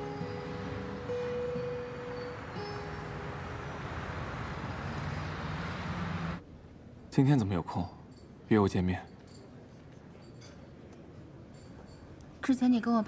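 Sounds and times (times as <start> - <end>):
faint held music notes: 0.0 - 6.4
city road traffic hum: 0.0 - 6.5.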